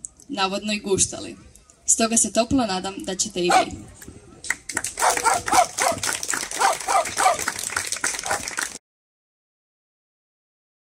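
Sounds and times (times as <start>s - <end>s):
small dog barking: 3.5s - 3.8s, 5.0s - 6.0s, 6.6s - 7.5s, 8.2s - 8.4s
small group clapping: 4.4s - 8.8s.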